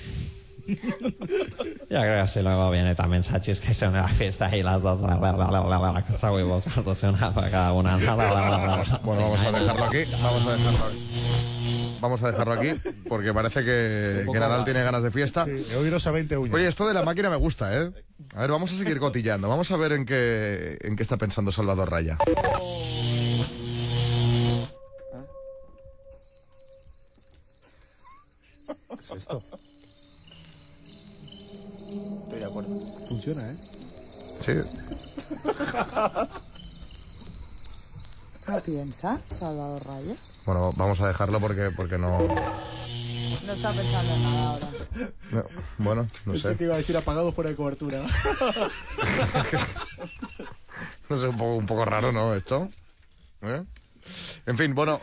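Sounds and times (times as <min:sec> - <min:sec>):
hiss: 0:00.0 - 0:00.8
cricket chirping: 0:00.0 - 0:55.0.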